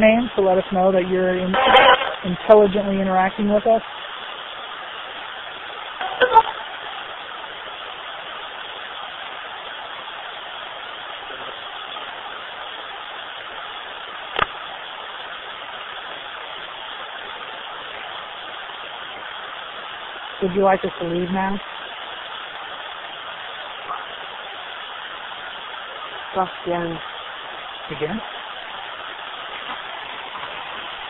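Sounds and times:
radio static hiss: 0.0 - 31.0.

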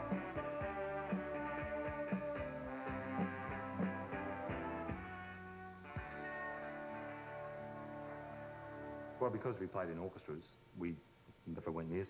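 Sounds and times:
rock band with horn section: 0.0 - 9.5.

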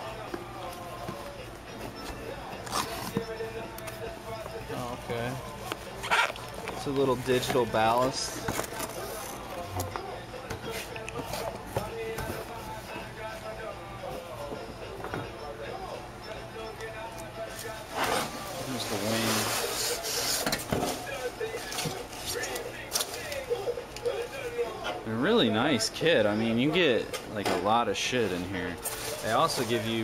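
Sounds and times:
cardboard and packing rustling: 17.6 - 20.1.

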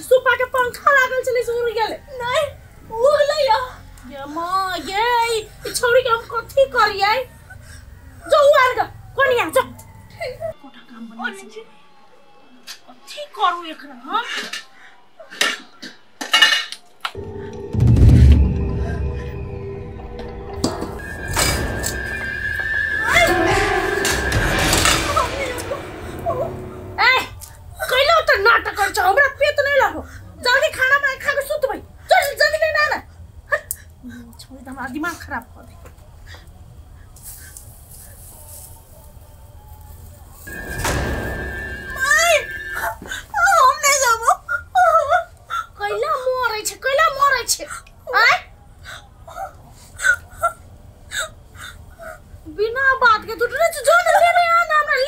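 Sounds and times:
metal pots and dishes clattering: 15.3 - 16.8.

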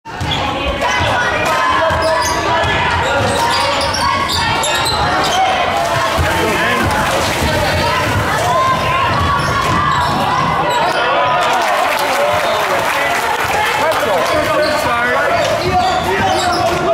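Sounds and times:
echoing voices: 0.1 - 11.4.

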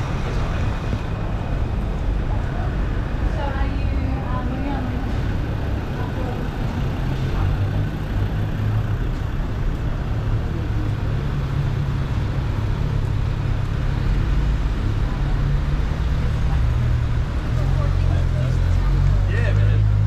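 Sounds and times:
traffic rumble: 0.0 - 20.0.

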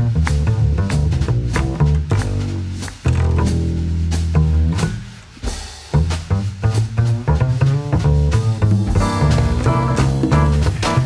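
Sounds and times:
double bass plucked notes: 0.0 - 5.3, 5.9 - 11.0.

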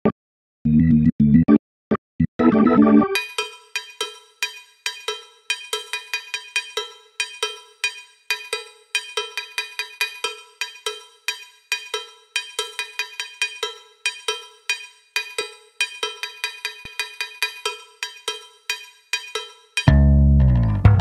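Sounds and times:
cowbell strikes: 3.2 - 19.9.

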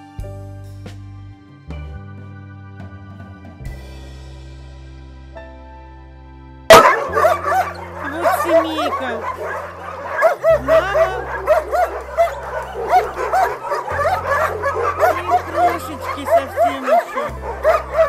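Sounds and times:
puppies yipping and whining: 6.7 - 18.0.

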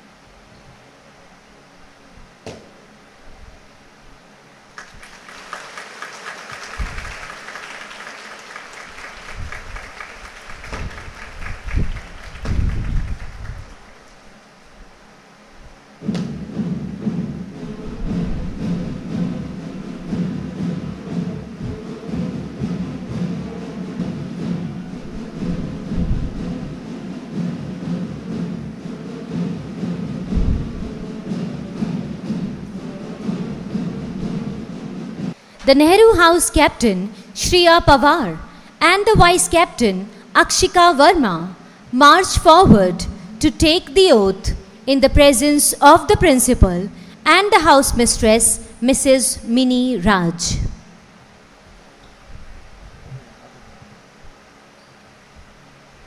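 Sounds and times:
march music with percussion: 4.8 - 13.9, 16.0 - 49.0
applause: 4.8 - 14.1
low thumps: 10.6 - 13.8, 16.0 - 35.9.

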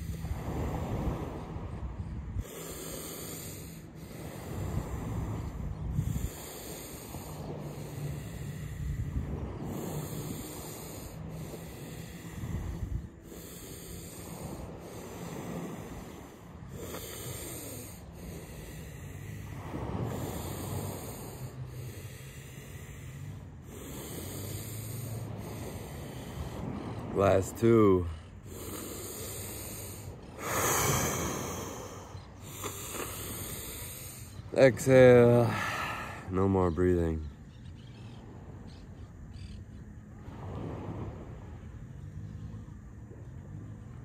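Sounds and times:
man breathing deeply: 0.0 - 36.3.

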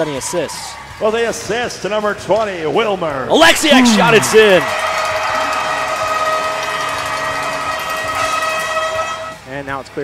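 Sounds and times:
crowd cheering: 3.4 - 9.4
arena goal horn: 5.9 - 9.5.

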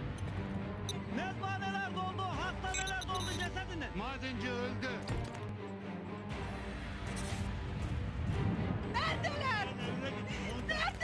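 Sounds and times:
background music with low tones: 0.0 - 11.0.

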